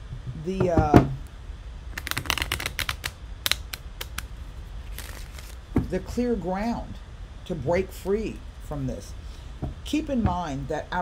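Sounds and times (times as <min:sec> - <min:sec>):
cards clicking: 0:02.0 - 0:04.3.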